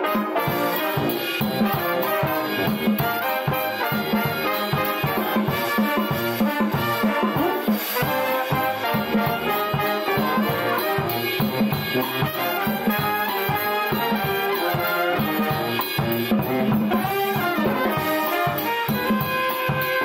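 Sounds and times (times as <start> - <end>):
brass band playing: 0.0 - 20.0
drum kit steady beat: 0.0 - 20.0.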